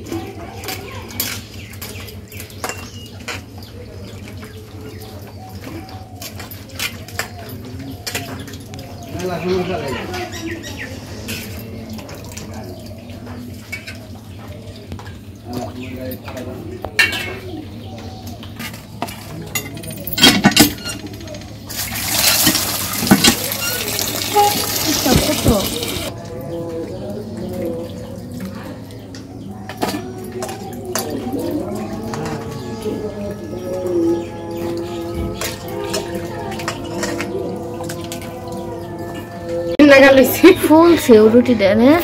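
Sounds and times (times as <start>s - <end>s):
water dripping and sloshing: 0.0s - 16.8s, 18.4s - 41.1s
water pouring: 21.7s - 26.1s
water splashing in steel bowl: 21.7s - 26.1s.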